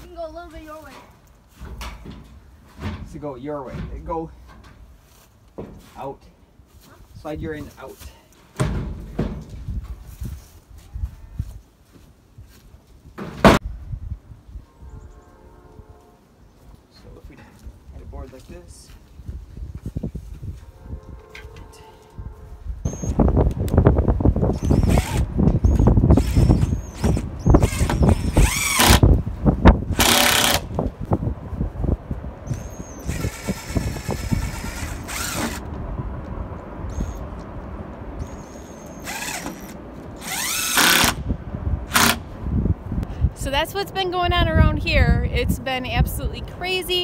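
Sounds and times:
impact driver driving screws: 24.6 - 29.1, 29.9 - 30.7, 33.1 - 35.7, 39.0 - 41.2, 41.9 - 42.2.

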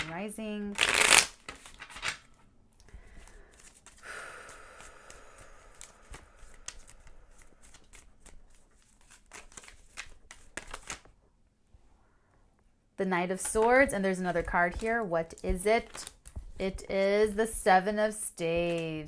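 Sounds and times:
cards being shuffled: 0.7 - 2.3, 3.1 - 4.0, 4.8 - 11.2, 13.3 - 19.0.

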